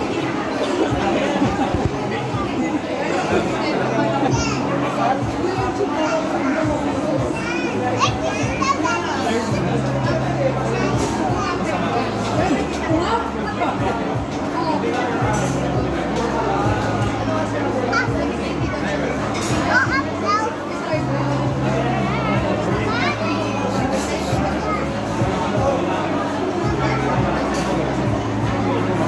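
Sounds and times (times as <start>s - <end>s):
restaurant crowd voices: 0.0s - 29.0s
young child's high voice: 4.3s - 4.7s, 5.9s - 9.5s, 19.3s - 21.1s.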